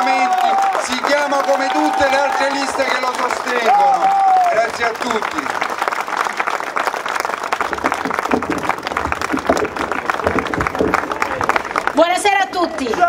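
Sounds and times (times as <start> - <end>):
crowd applause: 0.0 - 13.0.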